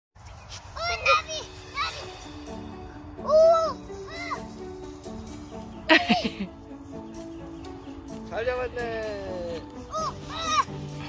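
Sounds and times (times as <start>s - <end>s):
children shouting and squealing: 0.5s - 6.6s, 9.5s - 11.0s.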